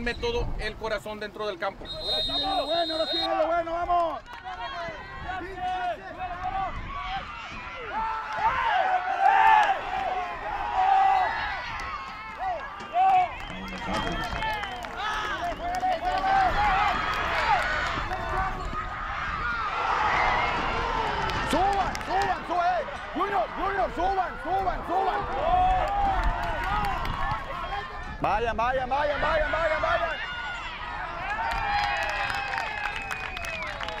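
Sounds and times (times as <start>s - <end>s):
men shouting on a field: 19.6s - 31.2s.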